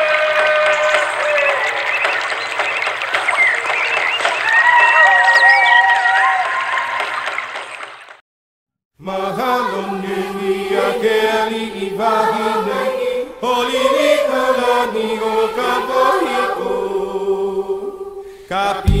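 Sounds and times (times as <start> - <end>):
vocal chant with gliding notes: 9.0 - 19.0.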